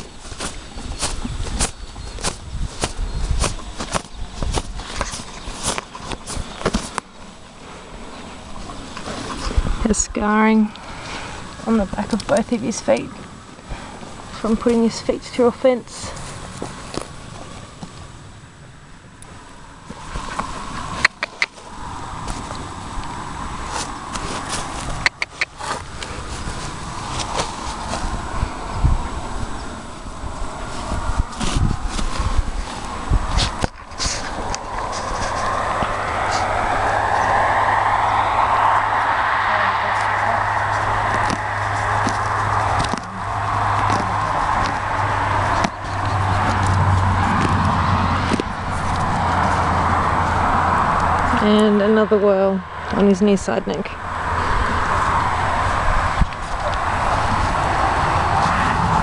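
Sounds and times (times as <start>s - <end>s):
engine running steadily: 16.2s - 59.0s.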